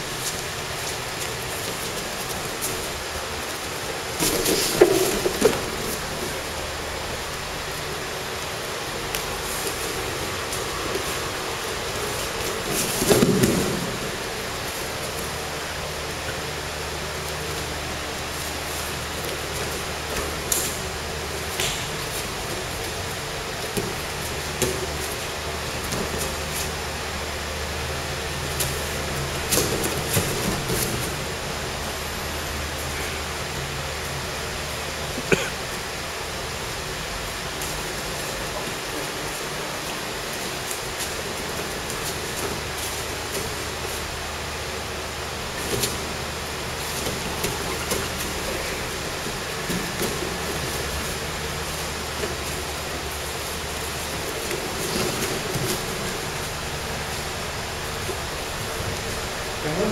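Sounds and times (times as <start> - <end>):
room noise: 0.0 - 59.9.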